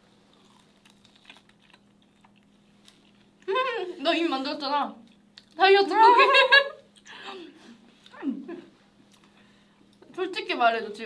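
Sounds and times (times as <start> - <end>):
chewing: 0.3 - 3.4.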